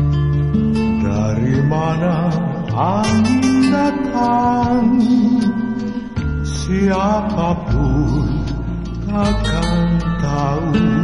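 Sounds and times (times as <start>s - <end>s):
person singing: 0.0s - 11.0s
pop song with bass line: 0.0s - 11.0s.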